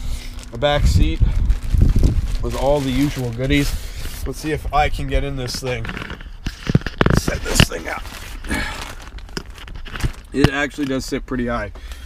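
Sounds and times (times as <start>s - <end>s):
rustling and handling noises: 0.0s - 12.0s.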